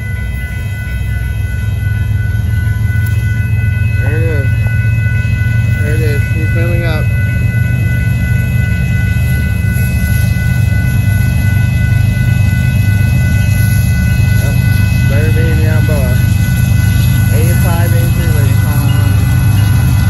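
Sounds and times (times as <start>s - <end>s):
steady high tones ringing: 0.0s - 20.0s
train cars rumbling on rails: 0.0s - 20.0s.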